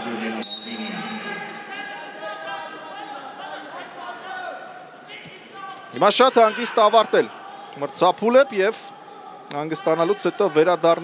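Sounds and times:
echoing arena hall noise: 0.0 - 11.0
referee's whistle blast: 0.4 - 1.5.

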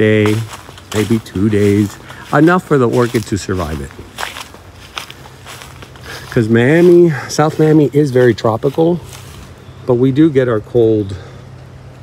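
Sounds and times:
soft footsteps on grass: 0.0 - 11.1
outdoor background noise: 0.0 - 12.0.

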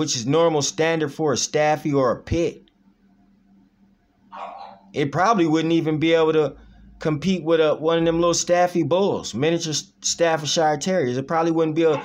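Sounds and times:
faint steady hum: 0.0 - 12.0
dog barking: 4.3 - 4.9.

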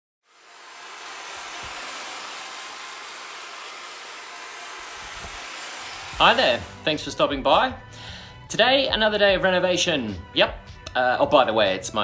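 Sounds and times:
drill with paddle mixer churning plaster: 0.2 - 6.9.

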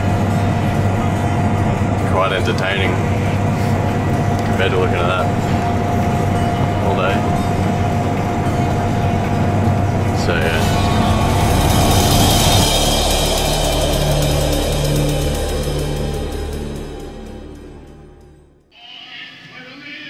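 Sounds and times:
combine harvester running: 0.0 - 18.3
music with repeating low notes: 0.0 - 18.7.

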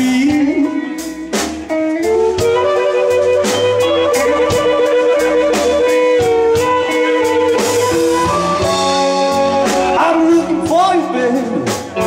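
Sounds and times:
blues harmonica: 0.0 - 12.0
drums keeping a steady beat: 0.0 - 12.0
electric bass: 0.0 - 12.0
electric guitar: 0.0 - 12.0.

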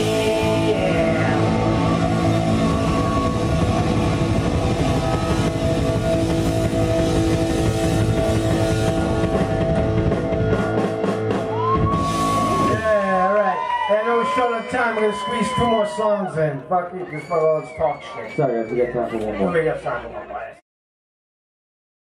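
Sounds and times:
drum kit: 0.0 - 13.4
distorted electric guitar: 0.0 - 13.9.

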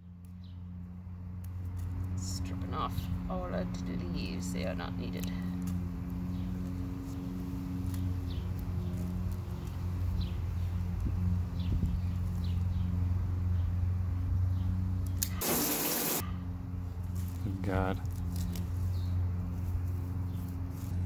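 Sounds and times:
leaves rustling and snipping: 1.2 - 2.5, 5.0 - 11.4, 17.0 - 21.0.

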